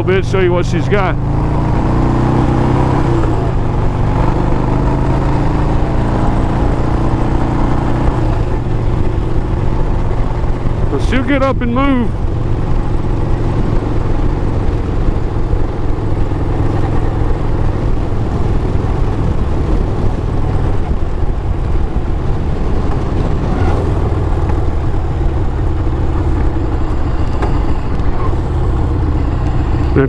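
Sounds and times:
motorcycle engine running: 0.0 - 30.0
road and wind noise: 0.0 - 30.0.

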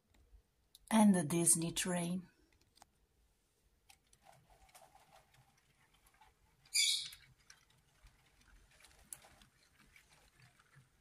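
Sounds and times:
plastic toy train clicks and rattles: 3.8 - 11.0.

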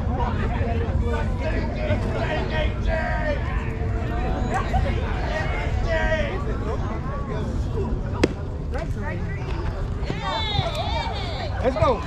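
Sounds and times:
faint voices: 0.0 - 12.0
baseball smacking into mitt: 8.2 - 8.4.

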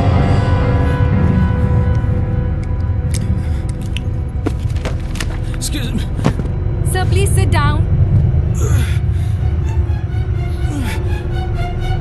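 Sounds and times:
background music: 0.0 - 12.0
steady low rumble: 0.0 - 12.0.

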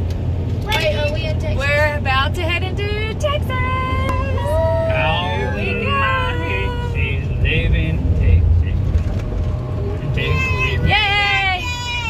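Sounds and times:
road and engine rumble: 0.0 - 12.0.

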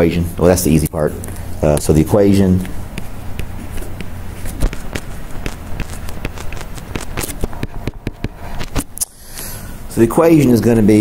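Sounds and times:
stylus tapping on a tablet screen: 2.6 - 8.9.

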